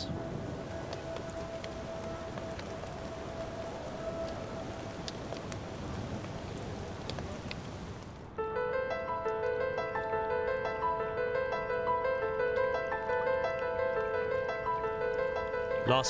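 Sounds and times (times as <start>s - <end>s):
rain on wet street: 0.0s - 16.0s.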